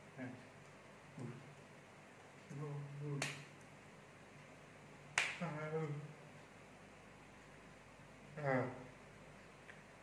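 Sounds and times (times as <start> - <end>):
man speaking: 0.2 - 0.5, 2.5 - 3.4, 5.4 - 6.2, 8.3 - 9.0
finger snaps: 3.1 - 3.6, 5.1 - 5.4.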